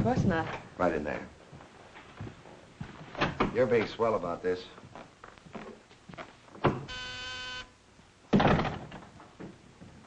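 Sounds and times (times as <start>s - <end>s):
office buzzer: 6.9s - 7.8s
door thump: 8.3s - 9.1s.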